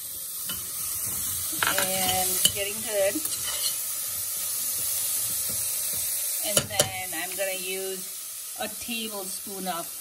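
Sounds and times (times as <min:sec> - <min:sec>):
vegetables sizzling in butter: 0:00.0 - 0:10.0
spoon stirring in saucepan: 0:00.1 - 0:07.0.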